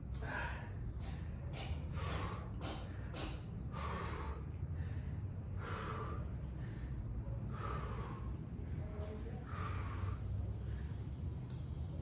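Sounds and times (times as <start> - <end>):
man breathing hard: 0.0 - 11.3.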